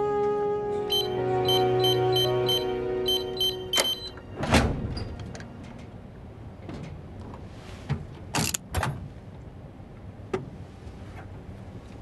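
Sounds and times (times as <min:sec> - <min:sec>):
metallic scraping clunks: 0:03.1 - 0:05.9.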